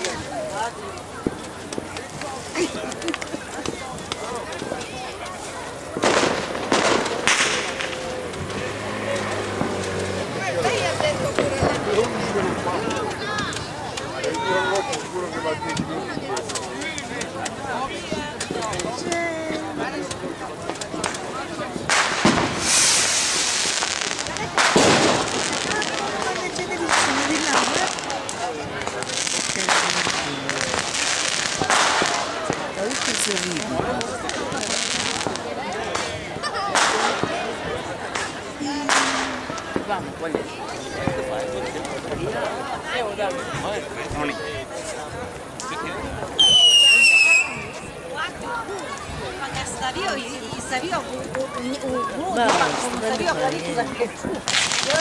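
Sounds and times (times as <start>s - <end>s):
fireworks bangs with echo: 0.0s - 42.8s, 45.3s - 51.1s, 52.0s - 55.0s
crowd voices: 0.0s - 55.0s.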